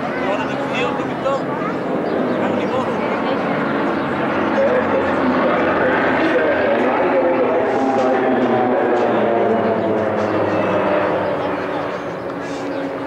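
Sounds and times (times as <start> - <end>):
propeller aircraft engines droning: 0.0 - 13.0.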